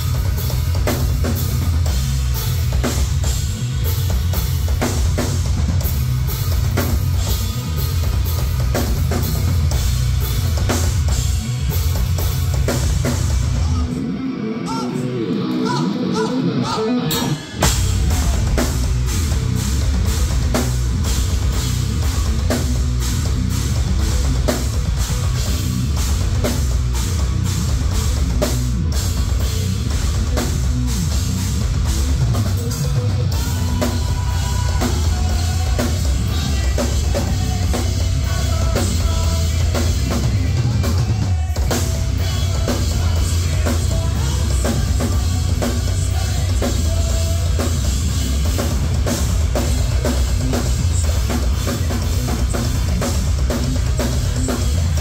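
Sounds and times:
heavy metal band playing live: 0:00.0 - 0:55.0.

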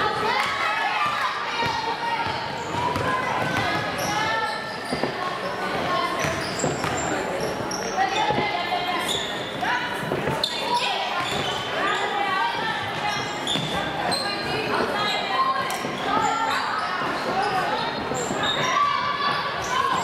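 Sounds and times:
sneaker squeaks: 0:00.3 - 0:20.0.

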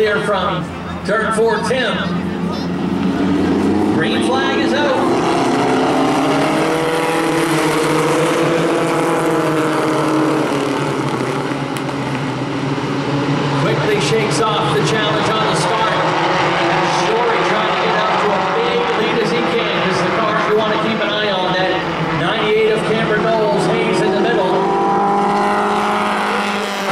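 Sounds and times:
race car engines revving: 0:00.0 - 0:26.9.

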